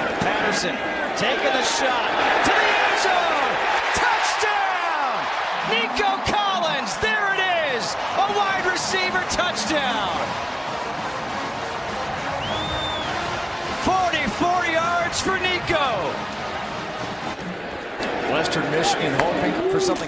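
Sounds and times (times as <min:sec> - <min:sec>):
stadium crowd cheering: 0:00.0 - 0:20.0
people shouting: 0:00.8 - 0:17.4.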